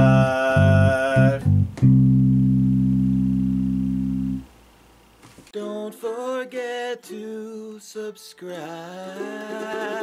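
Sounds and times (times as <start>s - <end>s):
sustained electric bass chord: 0.0s - 4.5s.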